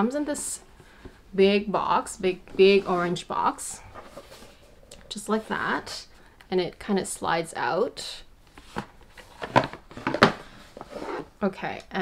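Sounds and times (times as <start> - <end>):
cardboard box scraping slide: 10.5 - 11.3.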